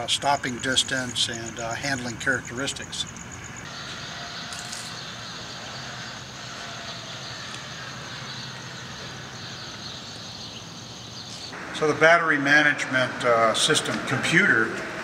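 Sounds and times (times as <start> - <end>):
faint outdoor background hiss: 0.0 - 15.0.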